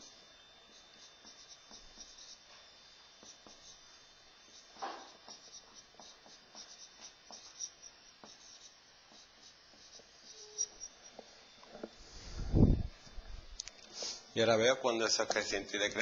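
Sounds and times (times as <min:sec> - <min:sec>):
marker squeaking on whiteboard: 0:00.7 - 0:02.4, 0:03.2 - 0:03.8, 0:04.5 - 0:10.9.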